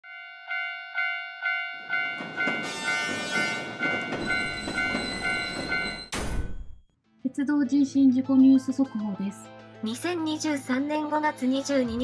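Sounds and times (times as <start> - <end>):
level crossing warning bell: 0.0 - 6.1.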